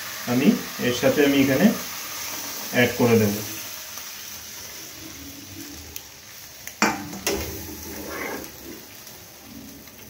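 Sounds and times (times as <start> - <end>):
food sliding into frying pan: 6.7 - 10.0.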